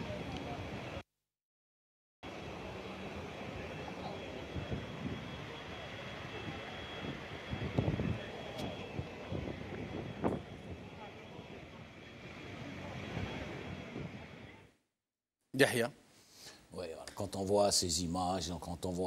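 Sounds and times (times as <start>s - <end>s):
vehicle engine and road noise: 2.2s - 14.6s.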